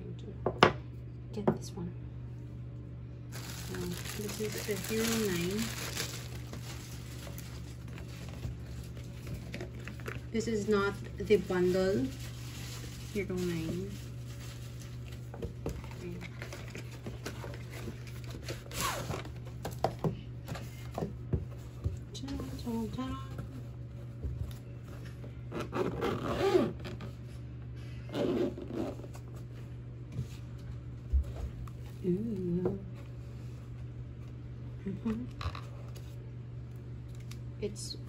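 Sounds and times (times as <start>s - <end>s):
steady low hum: 0.0s - 38.0s
packaging rustling and tapping: 3.3s - 10.2s
scraping zip-like pull: 25.5s - 26.8s.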